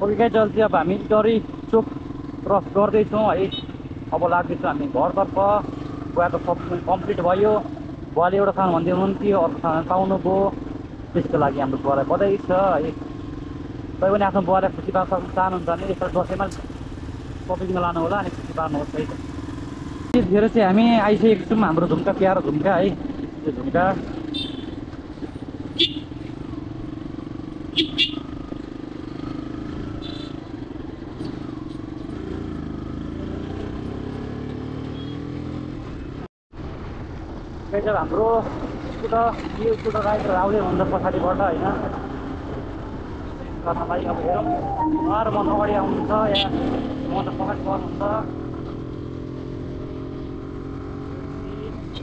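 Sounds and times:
motorcycle engine running: 1.0s - 3.0s
voices: 43.6s - 48.2s.

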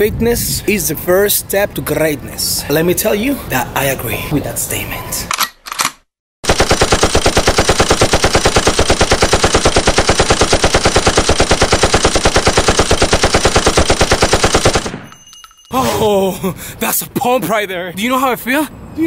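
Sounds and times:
fast even rattle of sharp pulses: 6.4s - 14.9s.

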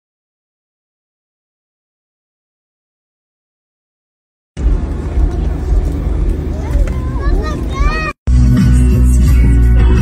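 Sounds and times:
steady low rumble: 4.6s - 10.0s
people's voices: 4.8s - 8.2s
high-pitched voice: 6.6s - 8.2s.

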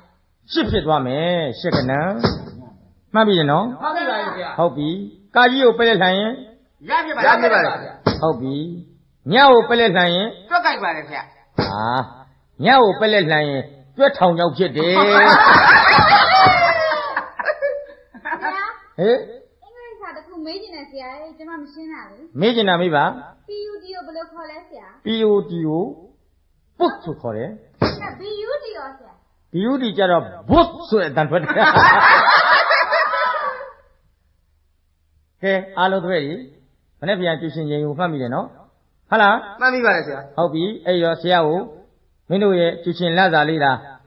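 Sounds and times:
people laughing: 14.8s - 18.6s, 31.4s - 33.9s.

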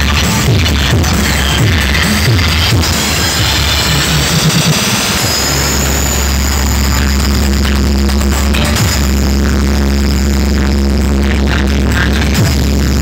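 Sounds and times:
deep bass drone: 0.0s - 13.0s
loud electronic dance music: 0.0s - 13.0s
falling bass sweeps: 0.4s - 13.0s.

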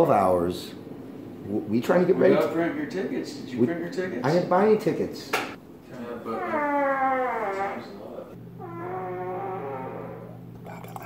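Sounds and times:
steady low hum: 8.2s - 11.0s.

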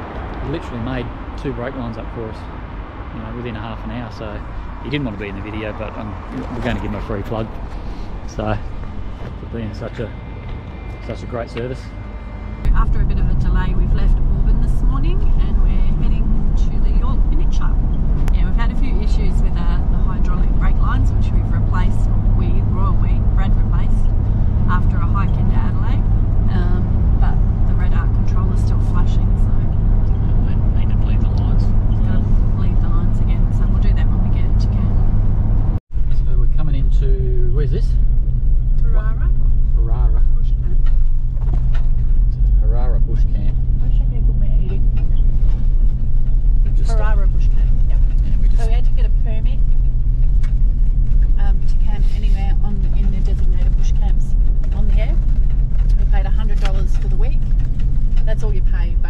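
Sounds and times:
car engine drone: 0.0s - 59.0s
road noise: 0.0s - 59.0s.

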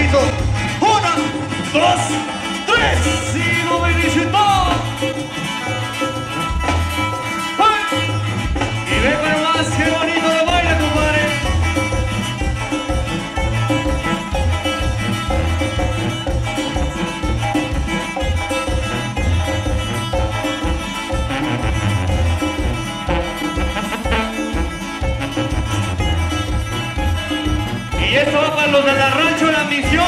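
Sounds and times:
acoustic guitar: 0.0s - 30.0s
congas: 0.0s - 30.0s
drums: 0.0s - 30.0s
sousaphone bass notes: 0.0s - 30.0s.

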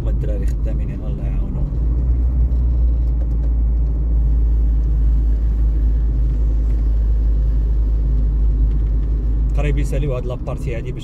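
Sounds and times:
car driving on paved road: 0.0s - 11.0s.

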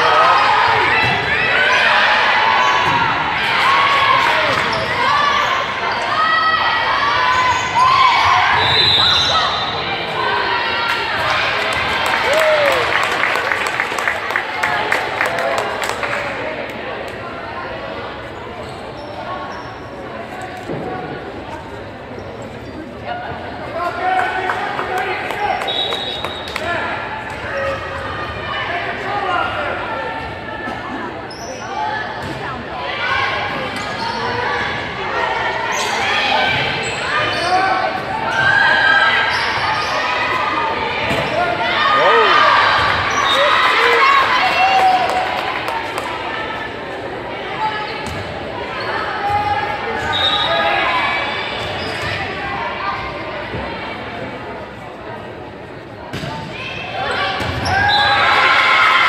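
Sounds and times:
spectators' voices echoing: 0.0s - 59.0s.

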